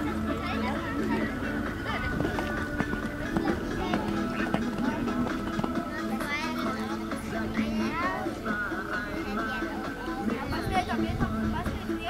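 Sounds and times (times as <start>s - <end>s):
music with held tones: 0.0s - 12.0s.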